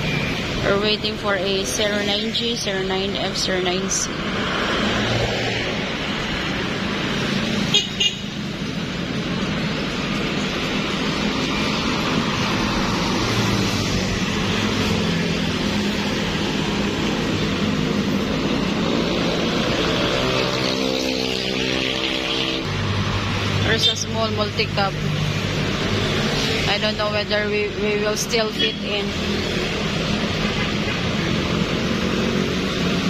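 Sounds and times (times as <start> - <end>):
road traffic passing: 0.0 - 33.0
car horn toot: 7.7 - 8.3.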